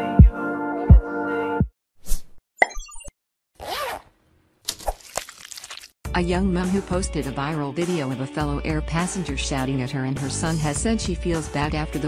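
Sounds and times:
pops and blips: 0:02.6 - 0:03.1.

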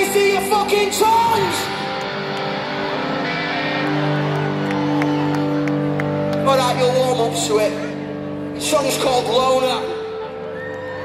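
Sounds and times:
rock band sustained chords: 0:00.0 - 0:11.0.

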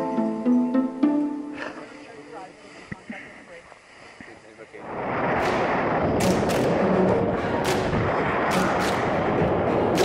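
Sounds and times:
wind buffeting microphone: 0:04.8 - 0:10.0.

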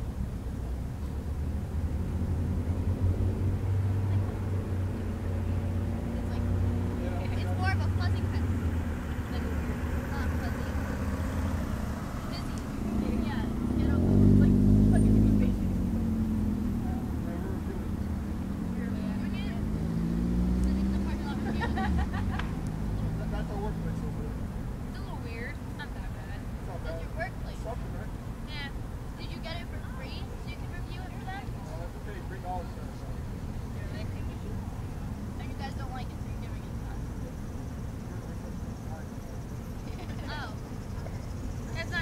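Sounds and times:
vehicle engine hum: 0:00.0 - 0:42.0
faint distant voices: 0:03.1 - 0:42.0.

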